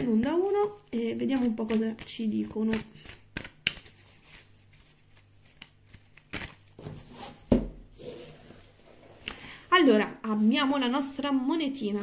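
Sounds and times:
card clicks and snaps: 0:02.7 - 0:03.9.

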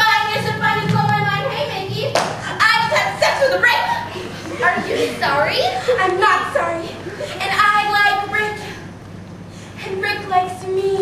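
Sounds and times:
young female voices: 0:00.0 - 0:09.0, 0:09.7 - 0:11.0
hand clapping: 0:02.1 - 0:02.4.

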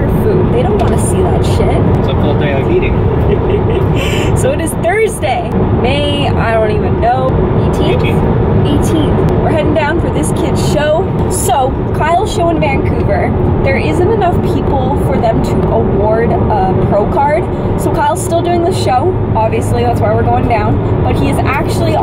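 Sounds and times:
car cabin road and engine noise: 0:00.0 - 0:22.0.

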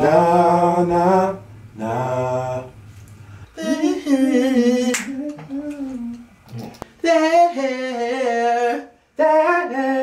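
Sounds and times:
man singing long wordless note: 0:03.6 - 0:06.2, 0:06.9 - 0:10.0.

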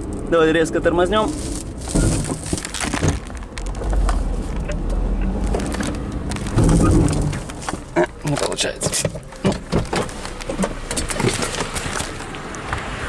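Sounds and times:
road rumble: 0:00.0 - 0:13.0
hood knocking against windshield: 0:06.5 - 0:11.8.

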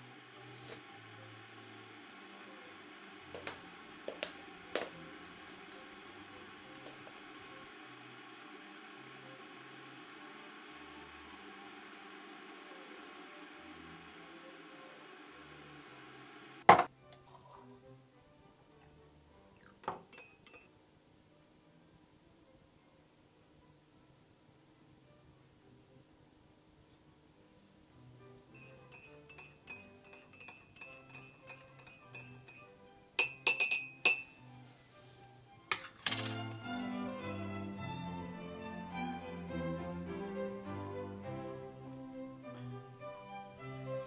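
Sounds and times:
steady appliance hum: 0:00.0 - 0:17.6, 0:24.1 - 0:44.0
crockery and cutlery clinking: 0:19.6 - 0:20.7, 0:28.5 - 0:34.5, 0:35.7 - 0:36.7
teaspoon clinking cups: 0:19.6 - 0:20.7, 0:28.5 - 0:34.4, 0:35.7 - 0:36.6.

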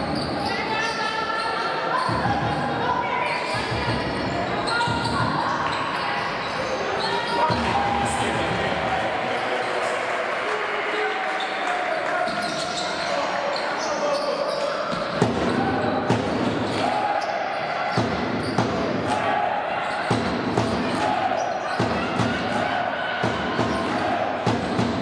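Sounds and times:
echoing sports hall din: 0:00.0 - 0:25.0.

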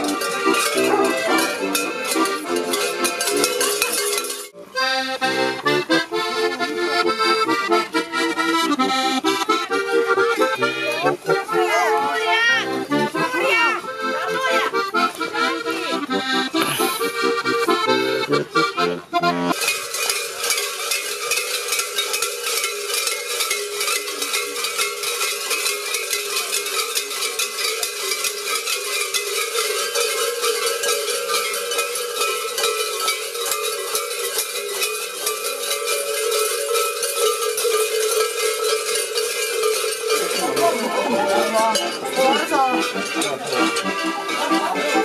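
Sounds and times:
large bells clanging: 0:00.0 - 0:45.0
voices: 0:00.0 - 0:45.0.

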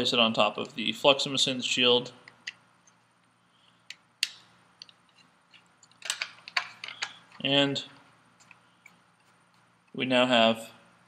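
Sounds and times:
circuit boards clicking and tapping: 0:03.9 - 0:07.4.

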